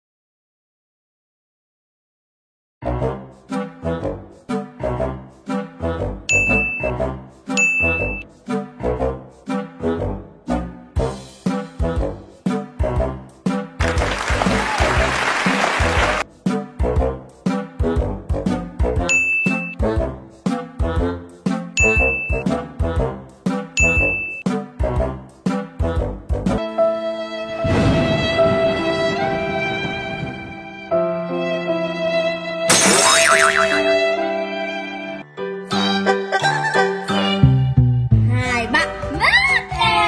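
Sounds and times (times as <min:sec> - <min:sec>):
bouncy brass music: 0:02.8 - 0:19.1, 0:19.7 - 0:26.6
bright ding chimes: 0:06.3 - 0:06.9, 0:07.6 - 0:08.2, 0:19.1 - 0:19.8, 0:21.8 - 0:22.4, 0:23.8 - 0:24.4.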